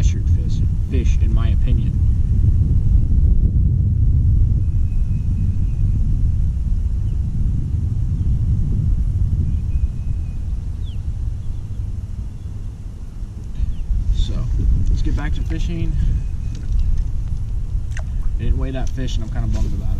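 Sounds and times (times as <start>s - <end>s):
wind buffeting microphone: 0.0s - 19.9s.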